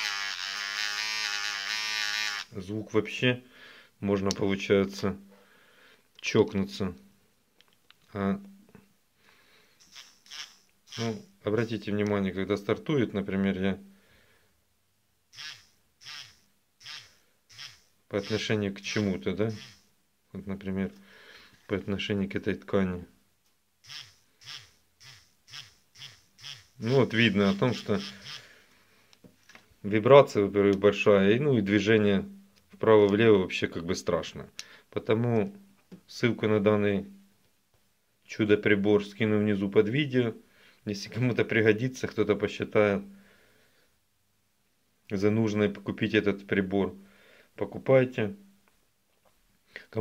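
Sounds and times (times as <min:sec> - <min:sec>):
electric nail file buzzing: 0:00.0 - 0:02.5, 0:09.8 - 0:11.3, 0:15.3 - 0:19.9, 0:23.8 - 0:28.5.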